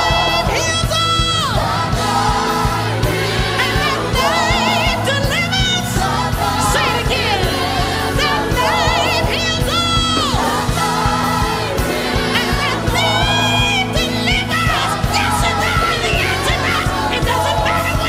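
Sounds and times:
band accompaniment with steady beat: 0.0s - 18.0s
person singing gospel song: 0.0s - 18.0s.

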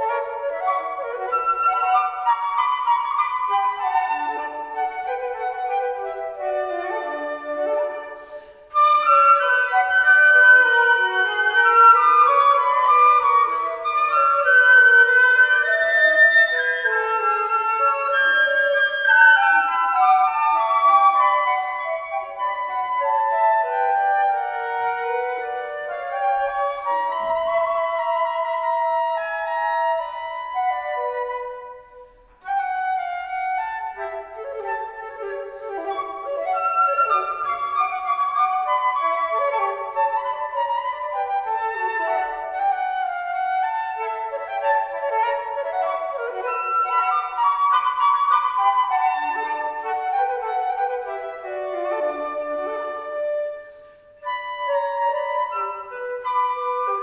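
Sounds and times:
two flutes playing a duet: 0.0s - 57.0s.

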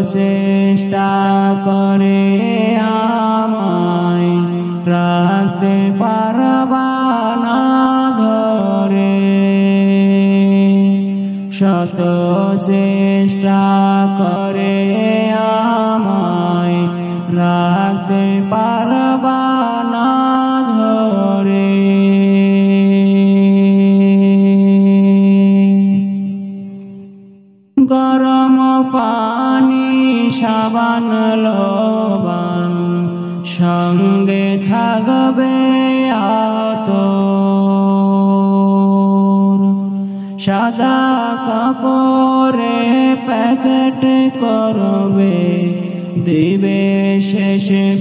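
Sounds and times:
wordless chant-like singing: 0.0s - 48.0s.

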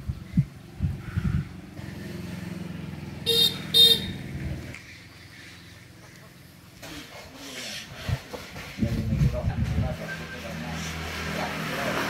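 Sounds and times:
passing vehicle engine: 0.0s - 6.7s, 9.1s - 12.0s
vehicle horn toots: 3.2s - 4.3s.

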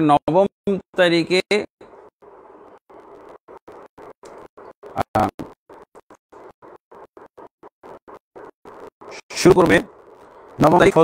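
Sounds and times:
short bursts of scratchy noise: 1.0s - 11.0s.

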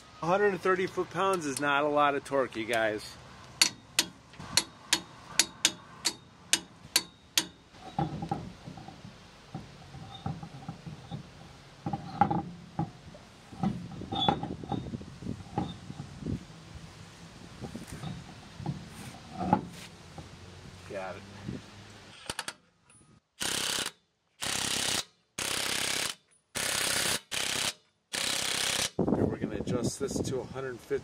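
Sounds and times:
torque wrench clicking: 3.6s - 8.4s
dull clunks and knocks: 7.8s - 16.2s, 17.6s - 20.3s.

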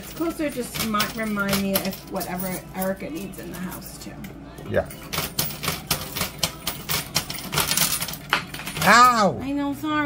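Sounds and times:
coins clinking in arcade machine: 0.0s - 9.3s.

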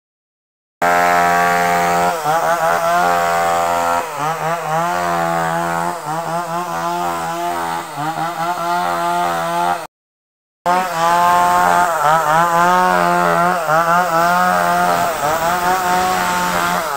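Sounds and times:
power tool cutting wood: 0.8s - 9.9s, 10.7s - 16.9s.

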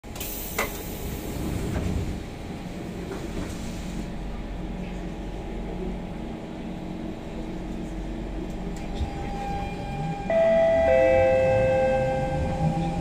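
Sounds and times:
low train rumble: 0.0s - 13.0s.

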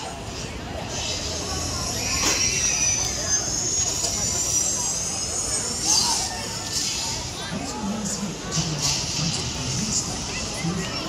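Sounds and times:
riders' voices: 0.0s - 11.0s
ride machinery whining: 0.2s - 11.0s.

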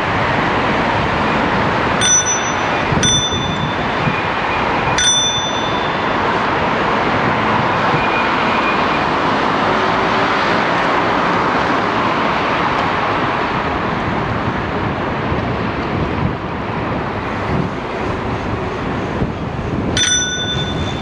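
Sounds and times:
traffic noise: 0.0s - 21.0s
wind: 0.0s - 21.0s
bicycle bell dinging: 2.0s - 6.5s, 20.0s - 21.0s.

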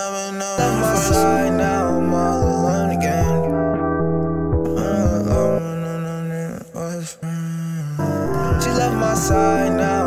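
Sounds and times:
hip-hop beat: 0.0s - 10.0s.

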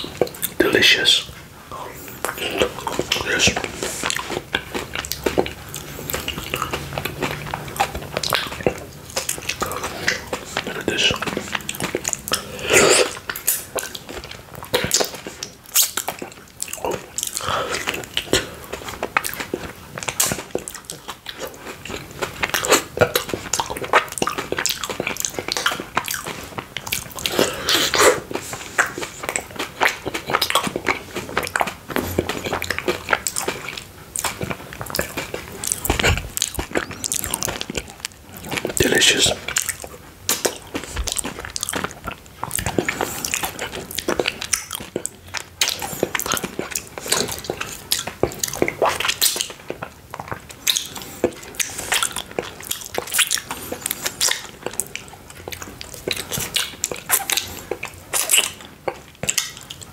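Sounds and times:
biting and chewing: 0.0s - 59.9s
sticky mouth clicks: 0.0s - 59.9s.

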